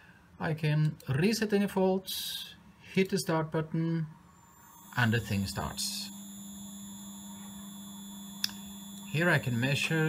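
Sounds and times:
faint high-pitched whine: 0.0 - 10.0
steady electrical hum: 0.0 - 10.0
sharp click: 8.4 - 9.1.

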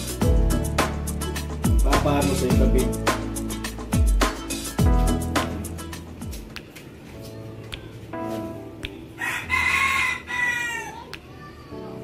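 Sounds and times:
guitar background music: 0.0 - 10.8.

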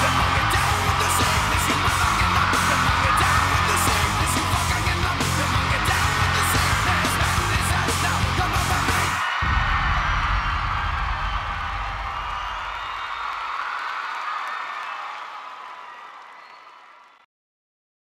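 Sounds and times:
crowd cheering and screaming: 0.0 - 17.3
crowd whistling: 0.0 - 17.3.

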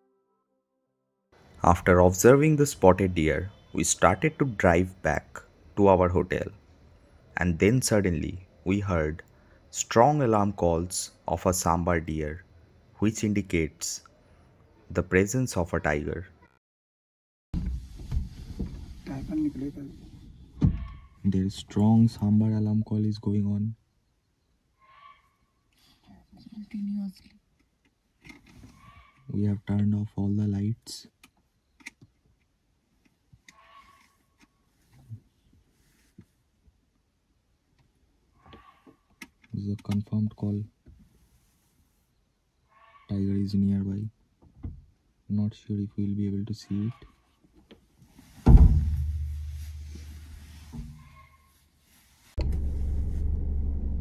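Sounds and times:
deer alarm call: 24.8 - 25.4, 28.8 - 29.3, 33.5 - 34.2, 42.7 - 43.2
low boom: 52.4 - 54.0
vehicle engine idling: 52.4 - 54.0.

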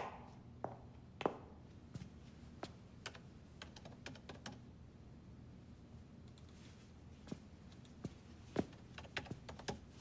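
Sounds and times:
faint keyboard typing: 3.0 - 4.7, 6.2 - 6.7, 8.6 - 10.0.

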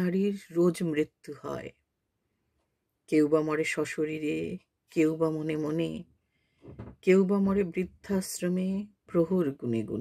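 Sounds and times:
woman reciting poem: 3.1 - 6.0, 7.1 - 10.0.

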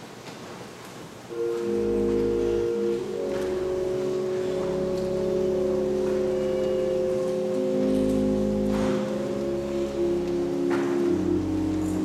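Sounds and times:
church organ chords: 1.3 - 12.0
faint knocks from people moving: 1.5 - 12.0.

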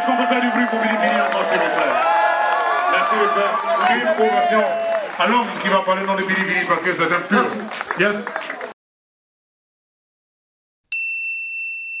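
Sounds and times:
high bell-like ding: 10.9 - 12.0.

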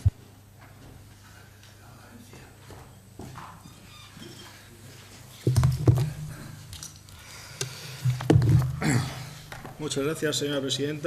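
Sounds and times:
footsteps of hard-soled shoes: 0.0 - 6.7
room hum: 0.0 - 11.0.

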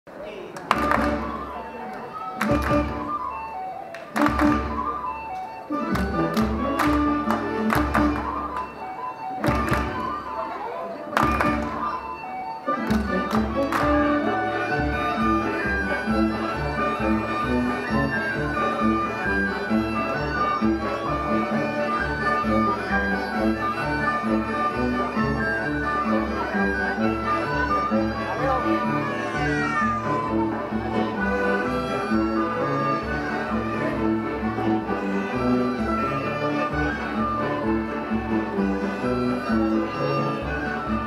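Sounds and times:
folk band playing polka: 0.7 - 41.0
accordion: 0.9 - 41.0.

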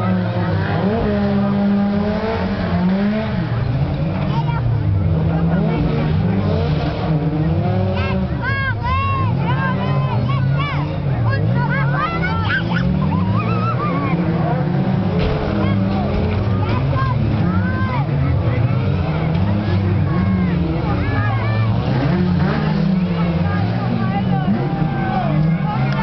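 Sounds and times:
stock car engines revving: 0.0 - 26.0.

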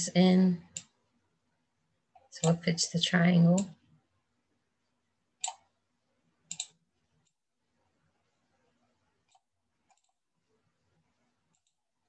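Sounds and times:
computer mouse clicking: 0.7 - 1.0, 5.4 - 5.7, 6.4 - 7.4, 9.2 - 10.2, 11.4 - 11.8.

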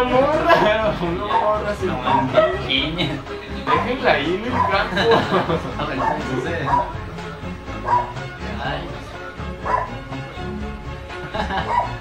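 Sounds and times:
background music: 0.0 - 12.0
dog barking: 1.3 - 2.8, 4.4 - 5.0, 5.9 - 7.0, 7.8 - 8.2, 9.6 - 10.0, 11.5 - 12.0.

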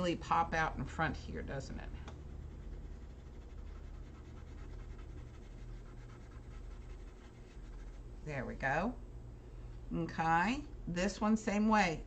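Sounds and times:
low steady hum: 0.0 - 12.0
colored pencil scratching on paper: 2.2 - 8.1.

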